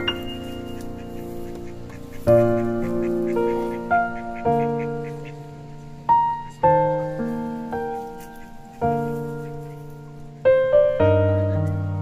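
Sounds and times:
ducks quacking faintly: 0:00.0 - 0:11.6
piano chords: 0:00.0 - 0:12.0.

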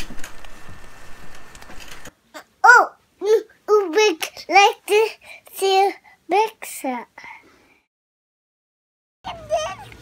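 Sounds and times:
small blower fan whining: 0:00.0 - 0:02.1.

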